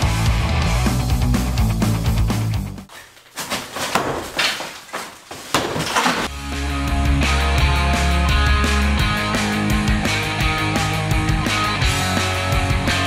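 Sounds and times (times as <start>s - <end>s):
rock music with heavy guitar: 0.0s - 2.8s, 6.3s - 13.0s
wall being smashed: 3.4s - 6.3s.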